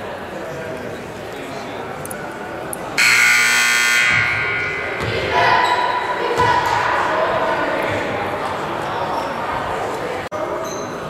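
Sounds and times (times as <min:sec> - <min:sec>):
scoreboard buzzer: 0:03.0 - 0:05.2.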